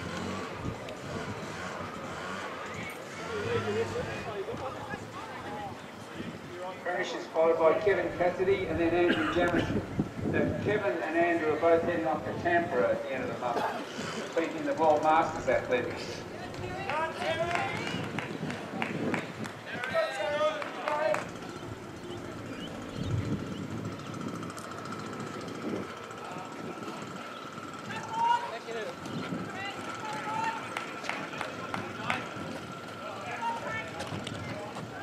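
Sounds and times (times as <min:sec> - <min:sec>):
distant voices: 0:00.0 - 0:35.0.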